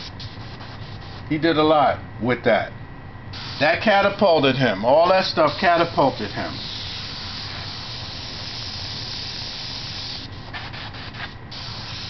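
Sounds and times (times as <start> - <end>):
airbrush spraying hiss: 0.0 - 1.3, 3.4 - 3.9, 5.1 - 12.0.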